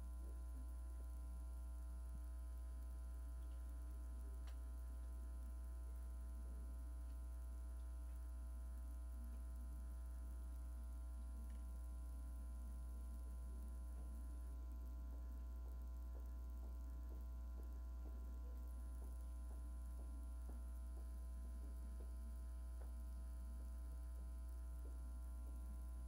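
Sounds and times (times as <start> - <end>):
electrical mains hum: 0.0 - 26.0
faint higher steady tones: 0.0 - 26.0
faint ticks: 2.6 - 6.1, 6.8 - 26.0.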